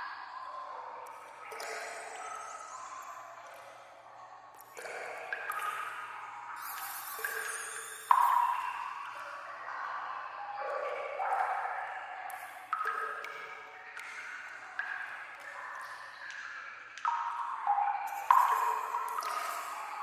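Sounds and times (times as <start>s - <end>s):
water drops plinking: 1.0s - 3.2s, 4.6s - 6.0s, 6.6s - 9.3s, 12.3s - 20.0s.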